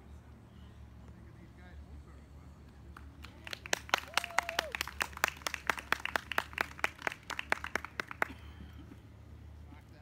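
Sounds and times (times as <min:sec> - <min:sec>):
light applause: 0:02.6 - 0:08.9
person cheering: 0:04.1 - 0:04.8.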